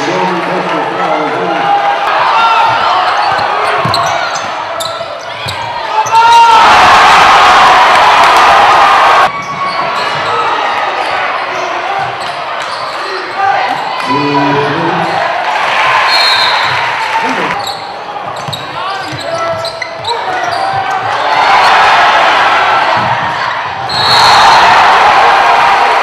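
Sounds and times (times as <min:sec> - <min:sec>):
crowd talking: 0:00.0 - 0:06.9, 0:08.6 - 0:26.0
crowd cheering: 0:00.0 - 0:26.0
sneakers squeaking: 0:02.6 - 0:06.1, 0:09.3 - 0:13.9, 0:16.1 - 0:21.8.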